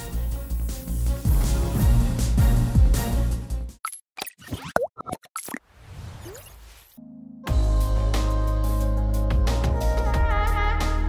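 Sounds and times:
cartoon plops and pops: 3.8s - 5.6s.

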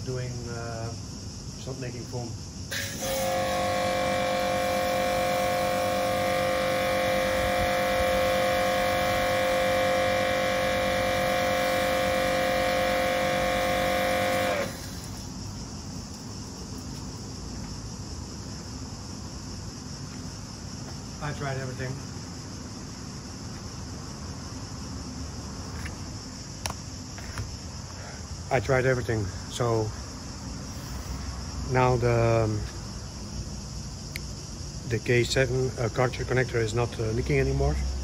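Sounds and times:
pressure washer motor whine: 2.7s - 15.3s.

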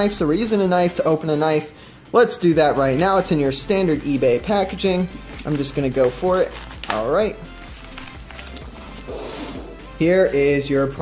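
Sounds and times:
quiet background music: 0.0s - 11.0s
plastic packaging crinkling: 5.3s - 9.1s.

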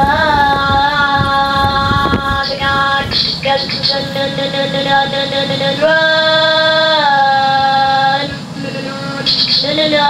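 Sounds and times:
synthetic voice holding a vowel tone: 0.0s - 10.0s.

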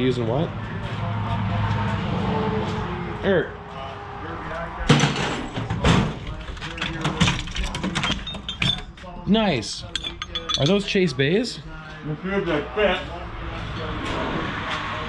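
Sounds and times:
metal drawers sliding and knocking: 4.9s - 8.8s
hand tools clattering: 4.9s - 9.0s, 9.7s - 11.1s.

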